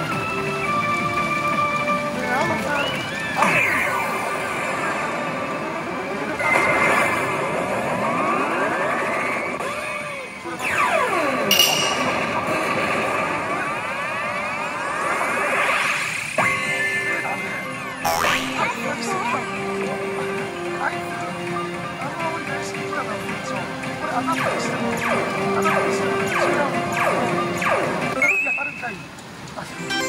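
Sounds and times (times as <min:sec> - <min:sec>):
electronic game machine music: 0:16.4 - 0:18.8.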